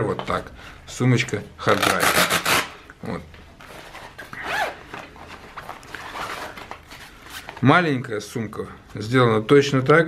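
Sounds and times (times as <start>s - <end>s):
zipper rasp: 1.8s - 2.8s, 4.1s - 4.9s
fabric rustling: 3.5s - 7.8s.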